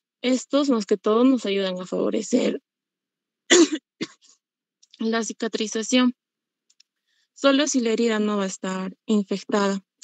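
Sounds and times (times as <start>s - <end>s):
person clearing throat: 3.5s - 4.3s.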